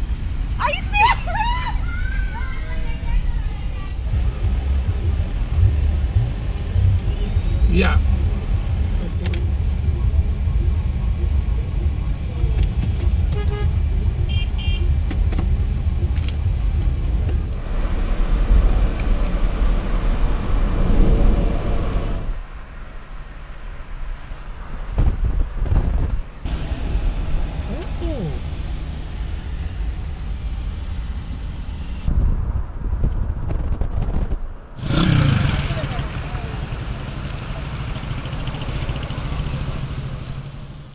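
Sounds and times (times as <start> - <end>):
car engine and road noise: 0.0 - 40.9
motorcycles passing: 34.8 - 40.9.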